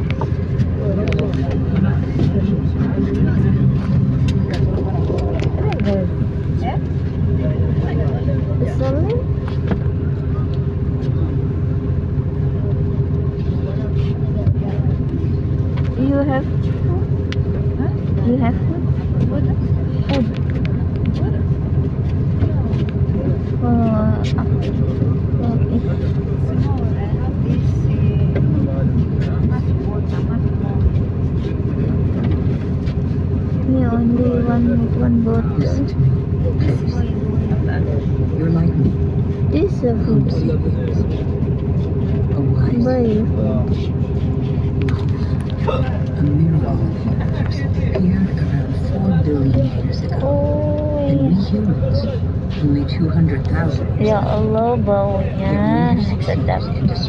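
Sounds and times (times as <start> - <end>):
indistinct voices: 0.0 - 57.0
vehicle engine and road noise: 0.0 - 57.0.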